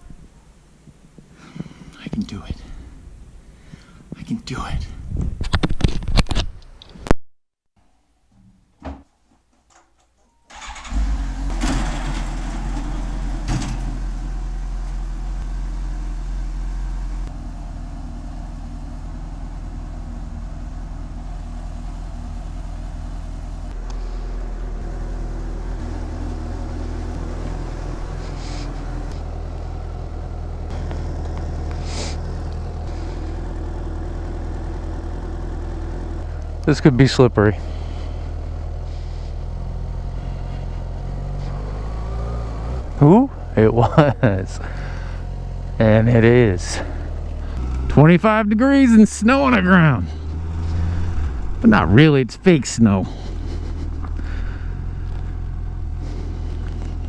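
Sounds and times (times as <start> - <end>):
motorcycle engine starting and idling: 10.5 - 57.0.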